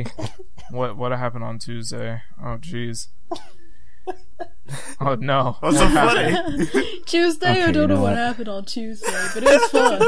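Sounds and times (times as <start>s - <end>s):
faint voices: 7.5s - 8.2s.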